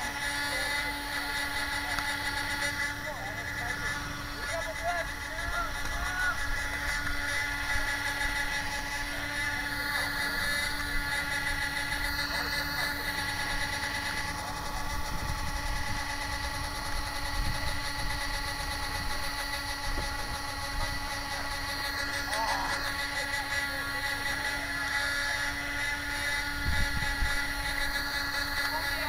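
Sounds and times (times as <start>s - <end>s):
steady tonal whine: 0.0s - 29.0s.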